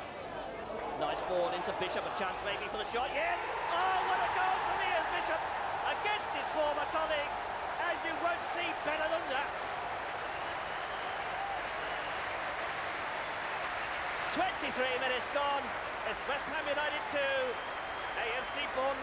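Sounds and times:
stadium crowd cheering and shouting: 0.0s - 19.0s.

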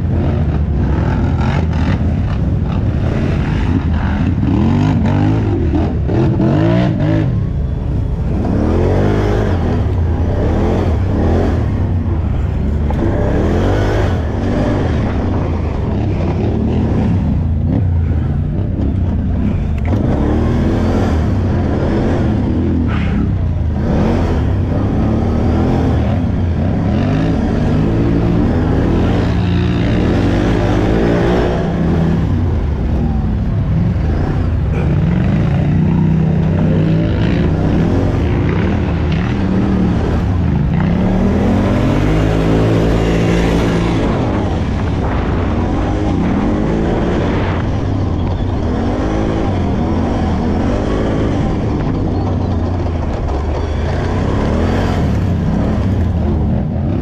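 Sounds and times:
atv engine revving: 0.0s - 57.0s
other quad engines: 0.0s - 57.0s.

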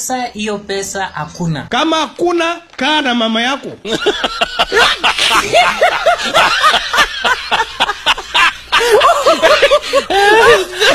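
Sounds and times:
person chuckling: 3.8s - 10.9s.

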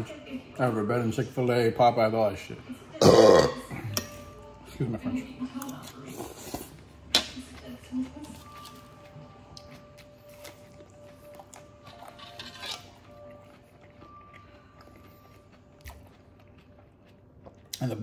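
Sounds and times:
faint music: 0.0s - 18.0s
lettuce crunching being chewed: 7.5s - 18.0s.

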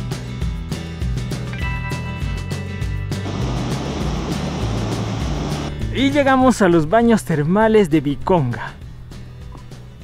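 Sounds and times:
background music: 0.0s - 10.0s
waterfall and stream rushing: 3.3s - 5.8s.

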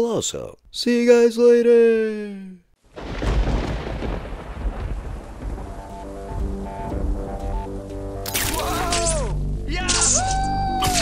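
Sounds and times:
rolling thunder: 2.9s - 7.8s.

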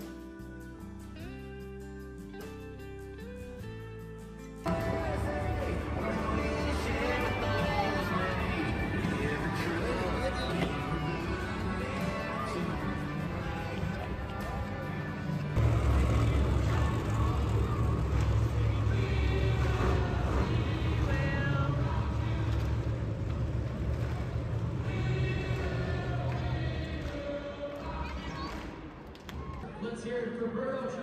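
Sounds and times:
music over loudspeakers: 0.0s - 28.7s
monster truck engines rumbling: 4.7s - 28.7s.

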